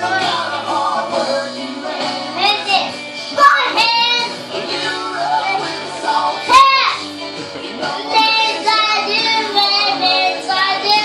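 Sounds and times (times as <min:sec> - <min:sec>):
recorded rock song: 0:00.0 - 0:11.0
child singing: 0:01.8 - 0:07.1, 0:07.8 - 0:11.0.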